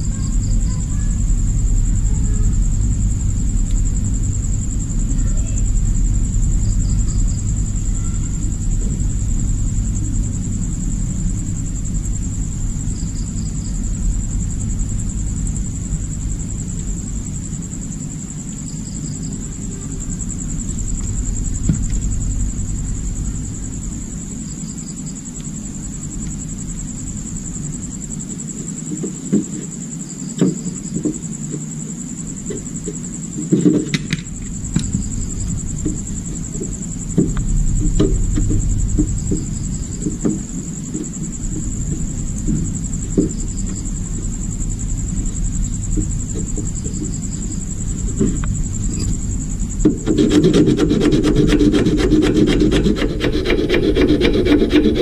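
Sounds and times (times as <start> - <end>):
low hum: 0.0 - 17.9.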